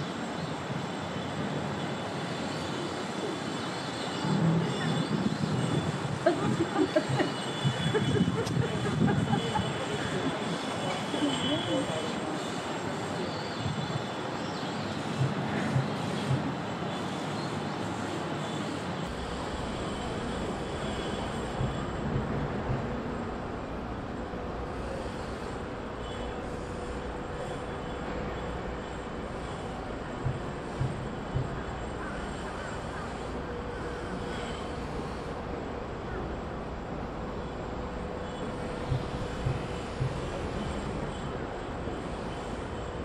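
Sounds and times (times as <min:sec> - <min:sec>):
murmur of distant voices: 0:00.0 - 0:43.0
steady background hum: 0:00.0 - 0:43.0.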